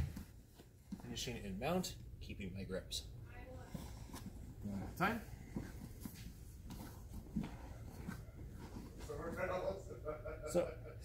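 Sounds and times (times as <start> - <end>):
fabric rustling on mat: 3.7 - 9.8
man talking: 9.0 - 10.8.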